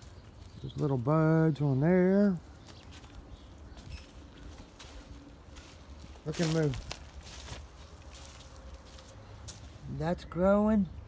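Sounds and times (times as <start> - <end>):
soft rustles and scuffs: 2.6 - 9.9.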